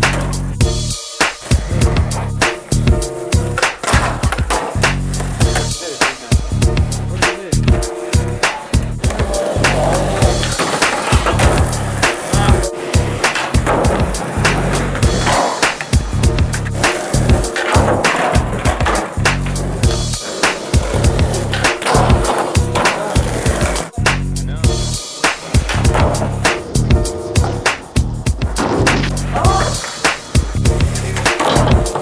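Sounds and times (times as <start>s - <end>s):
music with a steady beat: 0.0s - 32.0s
skateboards rolling on concrete: 0.0s - 32.0s
skateboards knocking on wooden boxes: 1.3s - 5.8s, 7.7s - 23.9s, 25.3s - 32.0s.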